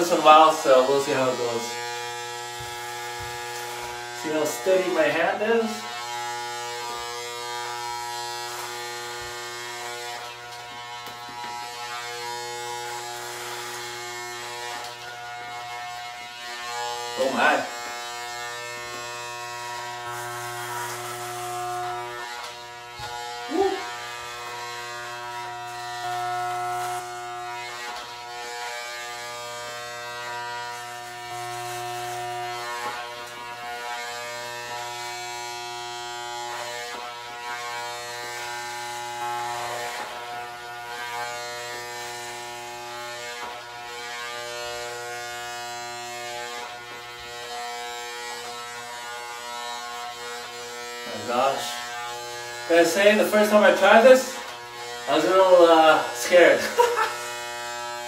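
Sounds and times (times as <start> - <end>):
electric hair clipper buzzing: 0.0 - 58.0.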